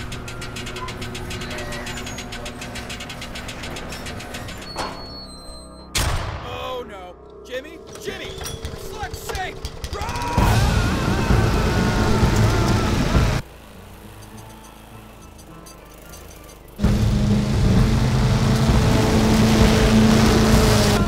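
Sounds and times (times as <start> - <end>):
fast mechanical clatter: 0.0 - 4.8, 7.9 - 21.0
warbling cries: 7.2 - 13.4
low droning tones: 16.8 - 21.0.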